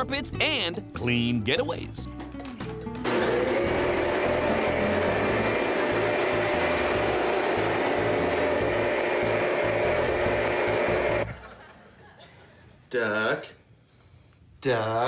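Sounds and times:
vacuum cleaner motor: 3.0 - 11.4.

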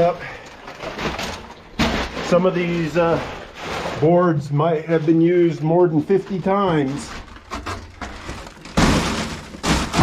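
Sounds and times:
rustling and handling noise: 0.0 - 10.0.

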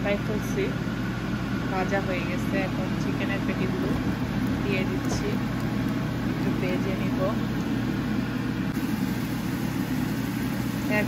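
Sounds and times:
steady low hum: 0.0 - 11.0
chicken frying in oil: 3.4 - 7.6, 8.7 - 11.0.

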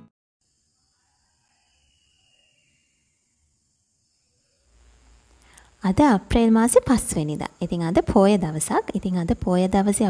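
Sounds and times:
faint background hiss: 0.4 - 10.0
faint low hum: 0.4 - 10.0.

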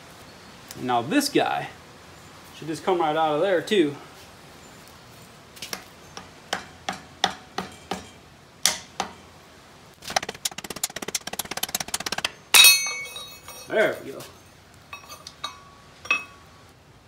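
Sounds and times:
fast rattling ticks: 10.0 - 12.4.

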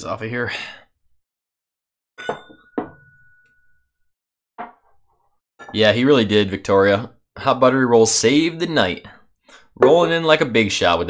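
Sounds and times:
glasses clinking: 2.2 - 3.8, 9.8 - 10.1.

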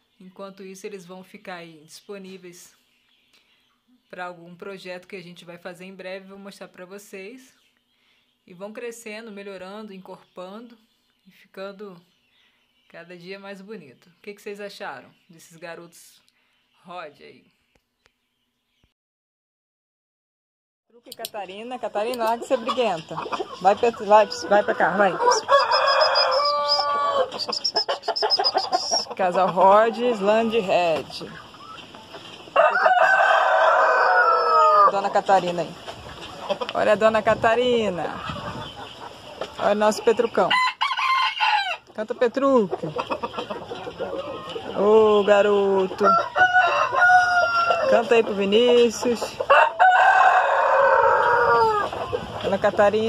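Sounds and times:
rooster crowing: 23.8 - 29.0, 32.5 - 35.0, 40.5 - 41.8, 46.0 - 48.1, 49.5 - 51.9
short high chirps: 26.2 - 29.0.

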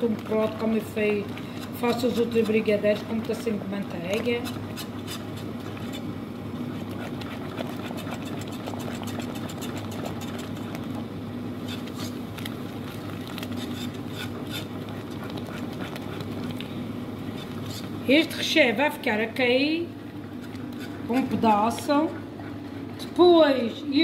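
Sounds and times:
whisk scraping a pot: 0.0 - 18.2, 20.2 - 22.8
steady low hum: 0.0 - 24.0.

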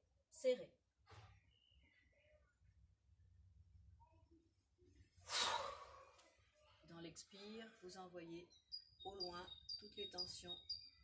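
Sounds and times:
woman breathing out forcefully: 5.2 - 6.2.

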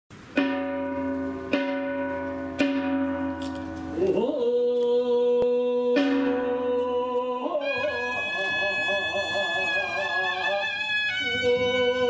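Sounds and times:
metal ritual bell ringing: 0.4 - 4.2.

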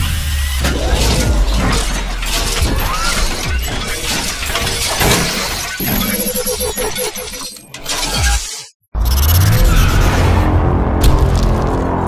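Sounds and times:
music: 9.2 - 12.0.

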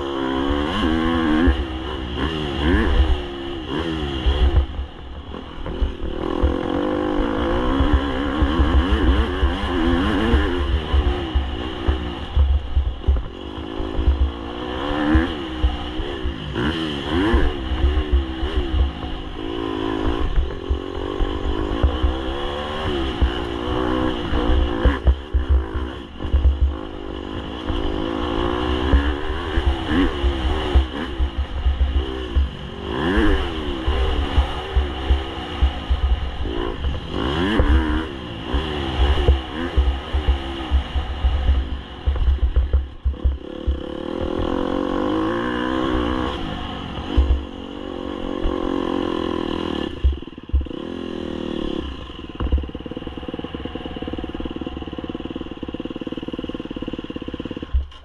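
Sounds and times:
dirt bike engine revving: 0.0 - 58.0.

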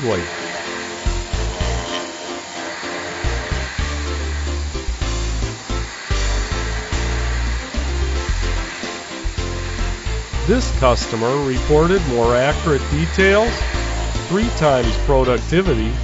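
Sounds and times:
milling machine whirring hiss: 0.0 - 16.0
background music with bass line: 1.0 - 2.0, 3.2 - 16.0.

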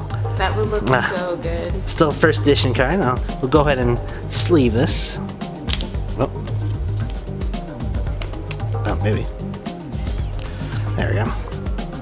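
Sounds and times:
music with repeating bass line: 0.0 - 12.0
card and plastic sleeve rustling: 5.7 - 7.4.

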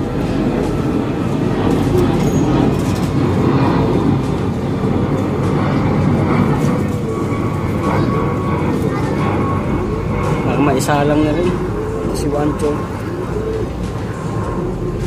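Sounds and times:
loud rumbling noise: 0.0 - 15.0
pigeons cooing: 0.0 - 15.0.

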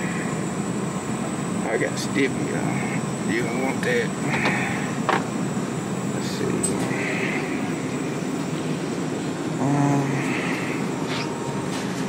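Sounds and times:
refrigerator fans humming: 0.0 - 12.0.

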